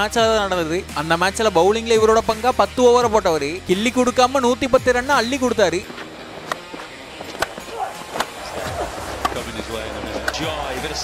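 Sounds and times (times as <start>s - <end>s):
noisy background: 0.0s - 11.0s
faint voices: 5.6s - 11.0s.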